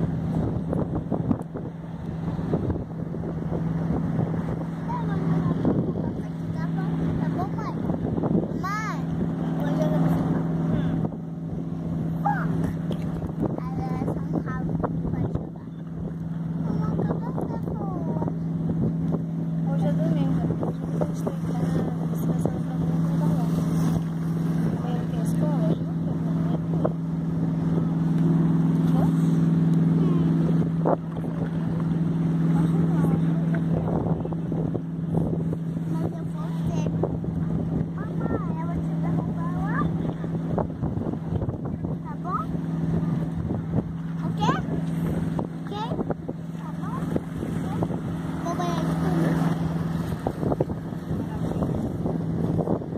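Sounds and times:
boat engine humming: 0.0 - 52.9
faint voices talking: 4.5 - 52.9.

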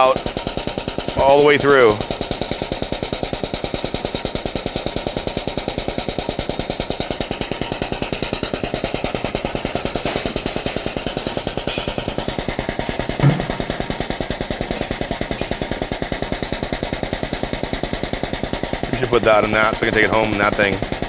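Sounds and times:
diaphragm pump rapid strokes: 0.0 - 21.0
loud thump: 13.2 - 14.0.

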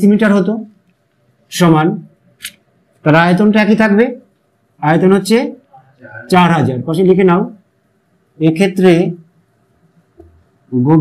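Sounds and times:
man speaking: 3.0 - 7.6, 10.7 - 11.0.

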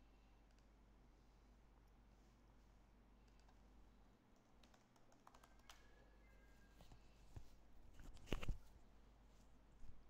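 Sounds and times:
typing on computer keyboard: 4.6 - 5.8.

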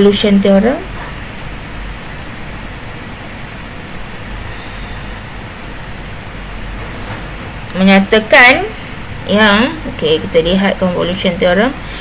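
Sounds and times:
background hiss: 0.0 - 12.0
low hum: 0.0 - 12.0.

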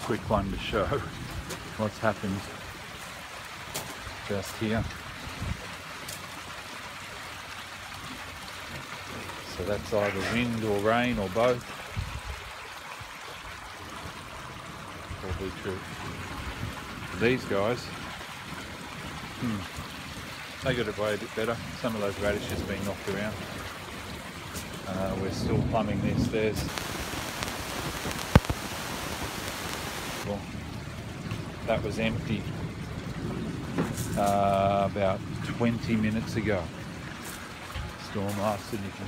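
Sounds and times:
rain falling hiss: 0.0 - 39.0
running water trickling: 0.0 - 39.0.

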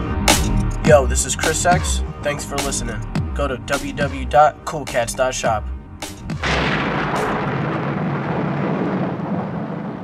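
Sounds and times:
deep rolling boom: 6.3 - 10.0.

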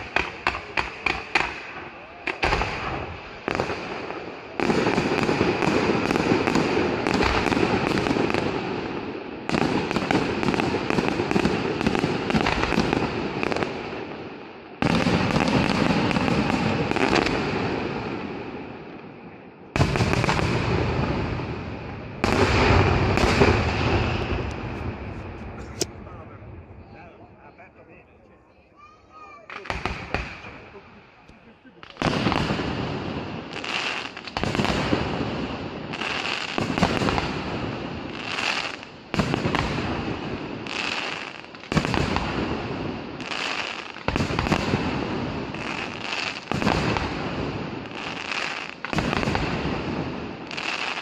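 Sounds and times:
fireworks bursting: 0.0 - 27.0, 28.8 - 51.0
fireworks crackling: 0.0 - 27.2, 27.8 - 51.0.

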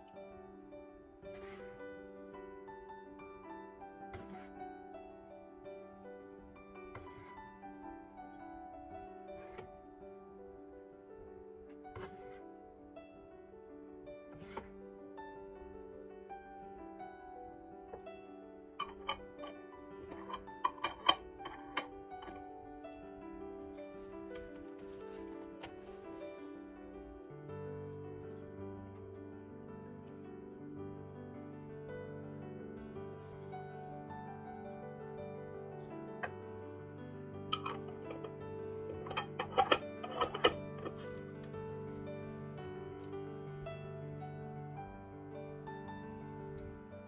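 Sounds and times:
soft piano music: 0.0 - 47.0
metal lid clicking on glass jar: 18.8 - 19.2, 20.0 - 22.4, 37.5 - 38.2, 38.9 - 41.1.

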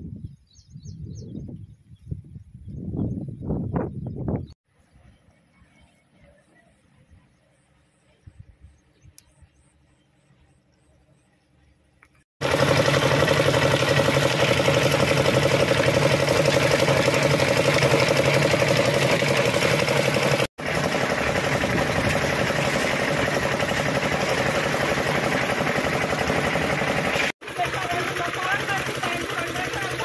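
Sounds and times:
engine running with even pulsing: 9.4 - 30.0.

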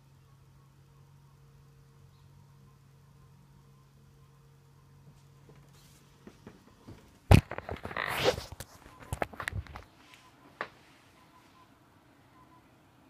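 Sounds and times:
rustling and scraping: 5.2 - 11.1.

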